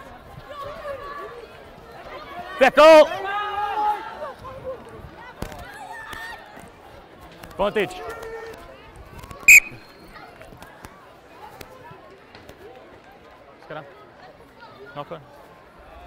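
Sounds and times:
referee's whistle blast: 0:09.5 - 0:09.9.

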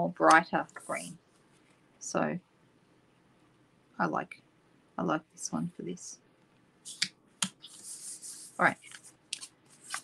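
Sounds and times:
card sliding rustle: 0:06.9 - 0:10.0.

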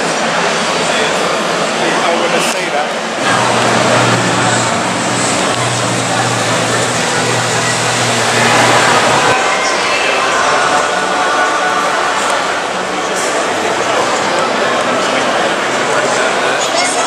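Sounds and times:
crowd chatter: 0:00.0 - 0:17.0
steady low hum: 0:03.2 - 0:09.4.

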